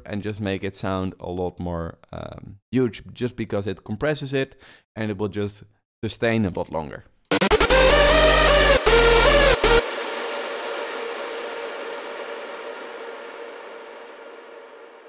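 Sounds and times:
electronic synth melody with bass: 7.3s - 15.0s
reverb tail: 7.3s - 15.0s.

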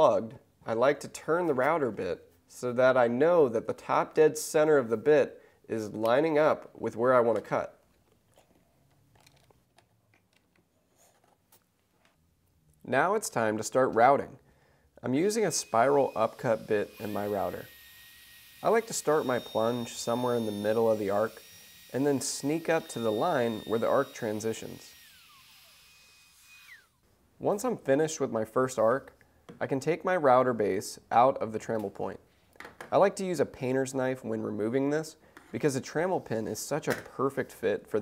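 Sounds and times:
router motor whine winding down: 15.5s - 27.0s.

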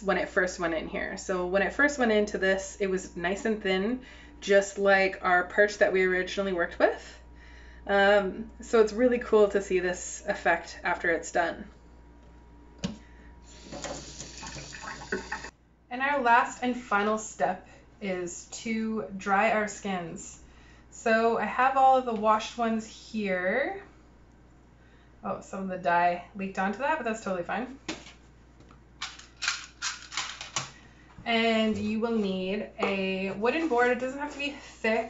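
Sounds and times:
faucet water running into sink: 13.5s - 15.5s
plastic box clicking and clattering: 29.0s - 30.7s.

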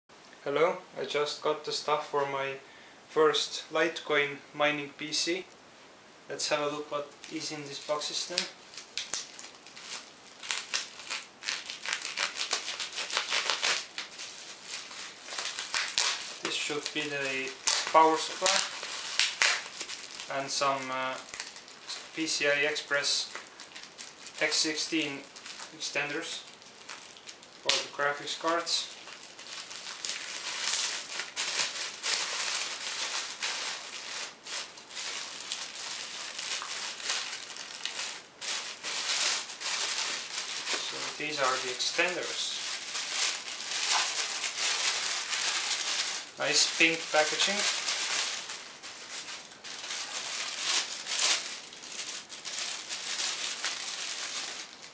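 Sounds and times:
plastic film crinkling and tearing: 7.0s - 54.9s.

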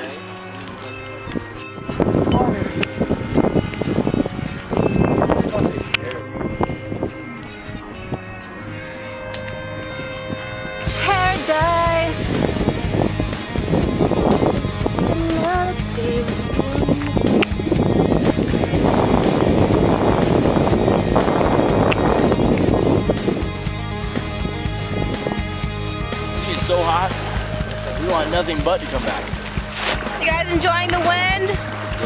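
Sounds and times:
song with beat and sung melody: 6.1s - 19.2s.

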